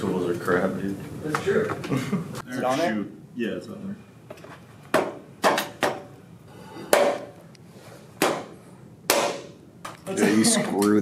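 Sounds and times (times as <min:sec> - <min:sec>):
knocks and clanks on desk frame: 0:04.3 - 0:06.1.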